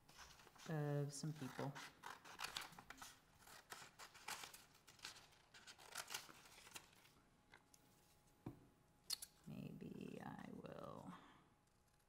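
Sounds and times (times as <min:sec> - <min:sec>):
scissors snipping paper: 0:01.5 - 0:06.9.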